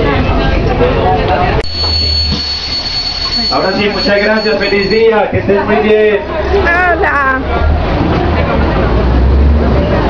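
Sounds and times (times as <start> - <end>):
bus engine rumble: 0.0 - 10.0
passengers talking: 0.0 - 10.0
thin high whine: 1.6 - 5.4.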